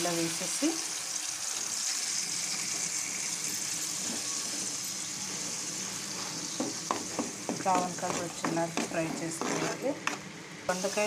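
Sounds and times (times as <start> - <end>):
paste sizzling in hot oil: 0.0 - 11.0
spoon scraping pan: 6.3 - 10.3.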